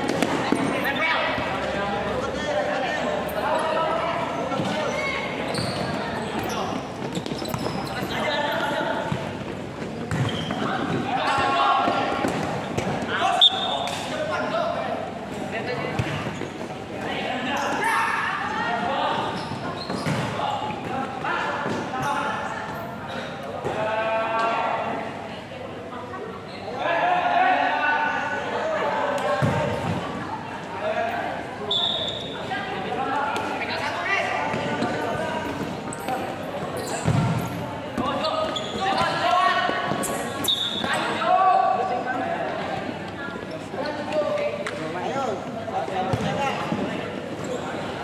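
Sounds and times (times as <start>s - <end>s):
ball kicked and bouncing: 10.0s - 10.6s, 37.0s - 37.4s.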